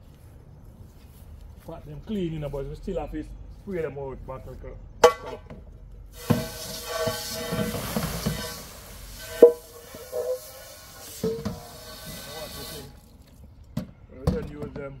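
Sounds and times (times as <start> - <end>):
hose spraying water on metal pot: 6.1 - 13.3
metal pot ringing: 9.2 - 10.5.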